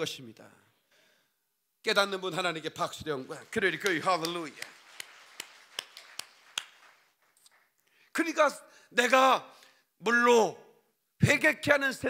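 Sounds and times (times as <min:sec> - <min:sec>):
man clapping hands: 0:03.4 - 0:07.7.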